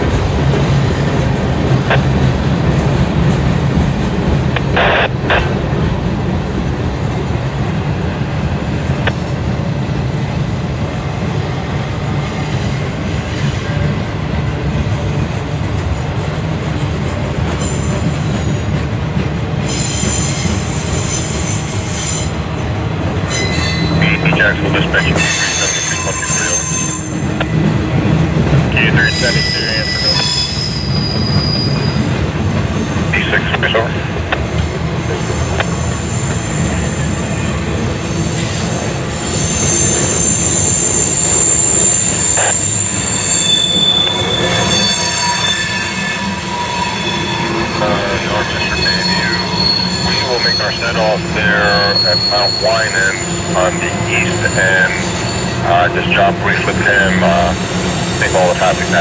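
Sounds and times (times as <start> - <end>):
steel wheels rumbling on rail: 0.0 - 59.0
high-pitched wheel squeal: 19.7 - 22.4, 29.0 - 32.1, 38.0 - 53.6, 54.3 - 55.6.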